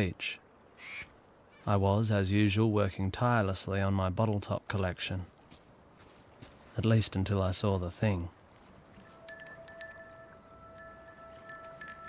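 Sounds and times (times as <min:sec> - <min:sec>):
chime-like tinkling: 0:09.0 - 0:12.0
held bell-like tone: 0:09.0 - 0:12.0.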